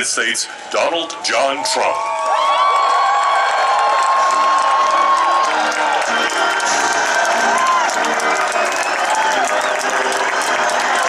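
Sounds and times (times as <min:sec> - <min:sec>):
crowd cheering and whooping: 0:01.4 - 0:11.0
people clapping: 0:01.8 - 0:11.0
music: 0:03.7 - 0:11.0.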